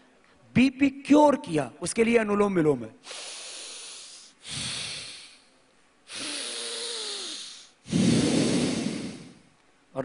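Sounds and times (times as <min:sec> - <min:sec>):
man breathing through nostril: 0:03.0 - 0:09.5.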